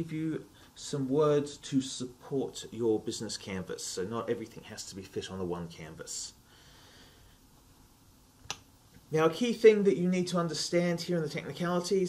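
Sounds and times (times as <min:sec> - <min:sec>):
sharp click: 0:08.4 - 0:08.7.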